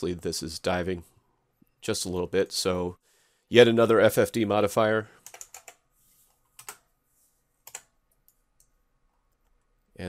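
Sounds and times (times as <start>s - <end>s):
computer keyboard and mouse clicks: 5.2s - 5.8s, 6.5s - 6.9s, 7.6s - 9.6s.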